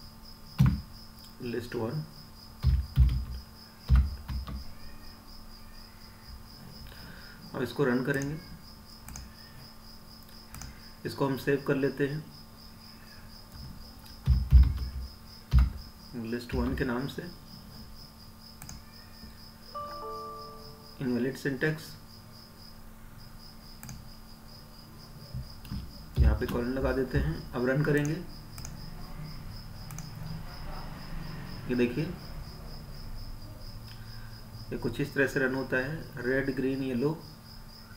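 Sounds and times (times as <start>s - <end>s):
keyboard typing: 2.6s - 4.6s, 9.0s - 9.3s, 10.5s - 10.8s, 13.5s - 15.8s, 25.6s - 28.8s.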